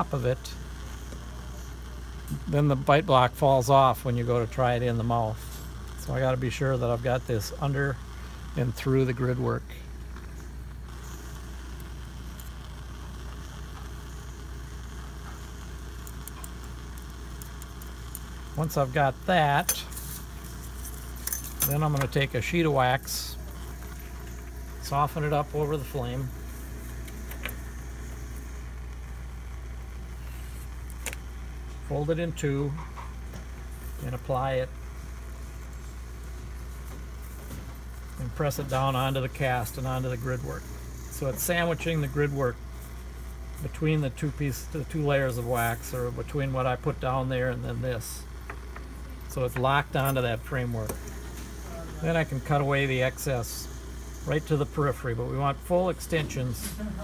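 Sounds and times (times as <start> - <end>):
faint hiss: 0.0 - 57.0
low background hum: 0.0 - 57.0
tinfoil crinkles and clicks: 19.6 - 22.3, 30.2 - 31.3.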